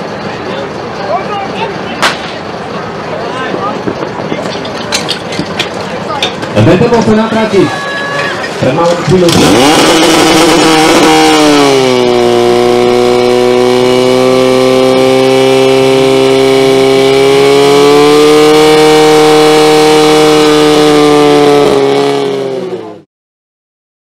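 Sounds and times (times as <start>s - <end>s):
pump engine at full throttle: 0.0s - 7.7s, 8.4s - 23.1s.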